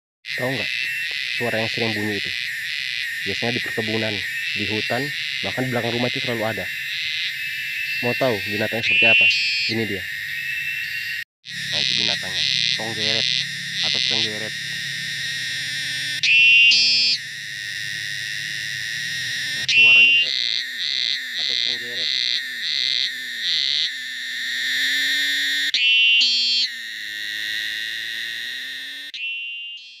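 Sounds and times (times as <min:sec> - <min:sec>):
cicada buzzing: 0:00.3 - 0:30.0.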